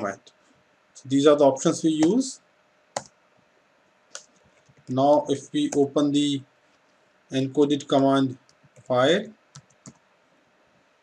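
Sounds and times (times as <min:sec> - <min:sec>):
computer keyboard keystrokes: 0:09.5 - 0:10.0.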